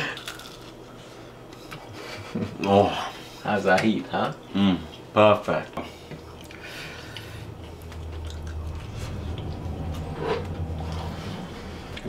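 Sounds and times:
person chewing crunchy food: 0.0 - 0.8, 6.2 - 12.0
low steady hum: 0.0 - 12.0.

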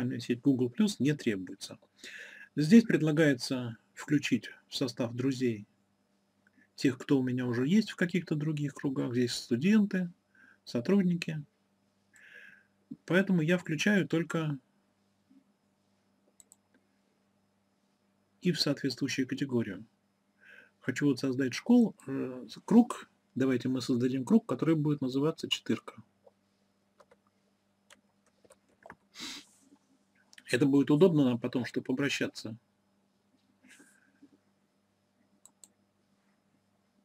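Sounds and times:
faint low hum: 0.0 - 37.0
computer mouse clicks: 16.3 - 16.8, 27.0 - 27.3, 35.4 - 35.8.

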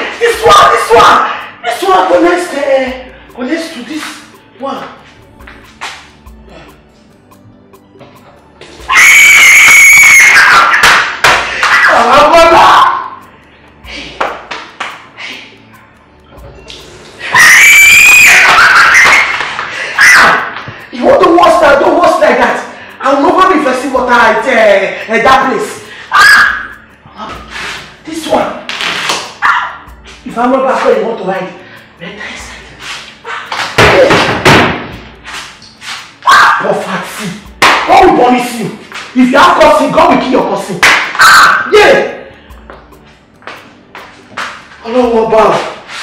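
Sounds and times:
woman screaming: 8.9 - 13.1, 17.3 - 19.4, 20.0 - 20.6, 26.1 - 26.8, 36.2 - 36.8, 41.1 - 41.7.

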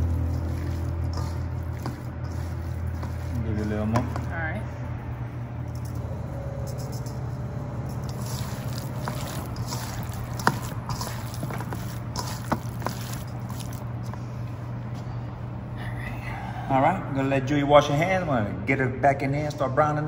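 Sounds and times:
hands squelching raw meat: 0.0 - 4.3, 8.0 - 14.2
steady low hum: 0.0 - 19.8.

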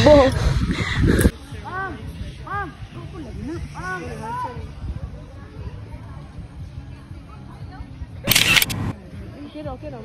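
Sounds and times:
faint voices: 0.0 - 10.0.

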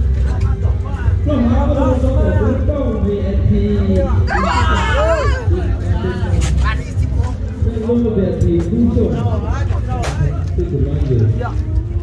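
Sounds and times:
crowd babble: 0.0 - 12.0
people talking at once: 0.0 - 12.0.

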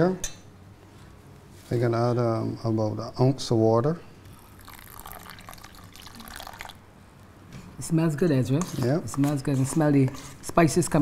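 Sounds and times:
water pouring into metal bowl: 4.4 - 6.8.

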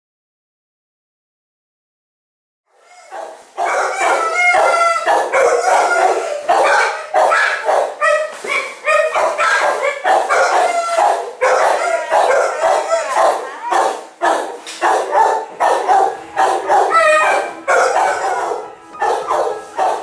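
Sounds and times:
dogs barking: 2.8 - 20.0.

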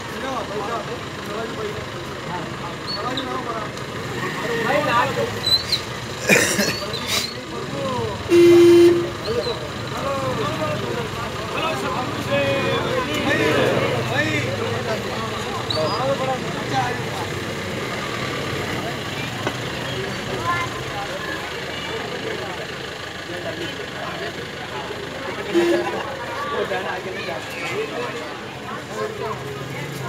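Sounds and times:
crowd chatter: 0.0 - 30.0
vehicle horn blast: 8.3 - 9.2, 25.4 - 26.1.

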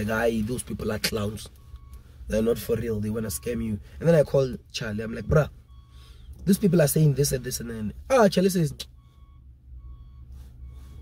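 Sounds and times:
reversing alarm beeping: 0.3 - 11.0.

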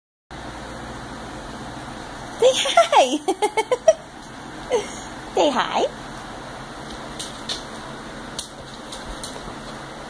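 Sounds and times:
air conditioner humming: 0.3 - 10.0.

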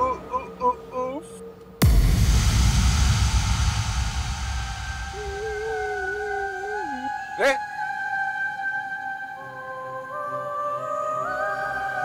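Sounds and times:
sustained high drones: 0.0 - 10.4
cinematic impact hit: 1.8 - 6.4
rising swoosh: 1.8 - 6.6
eerie wavering tone: 4.5 - 12.0.

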